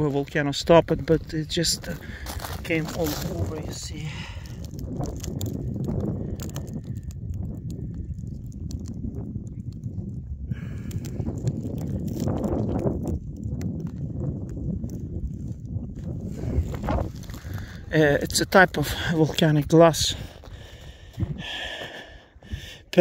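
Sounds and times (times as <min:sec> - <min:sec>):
wind rumbling on microphone: 0:00.0 - 0:23.0
crunching clicks on rough rock: 0:01.0 - 0:22.0.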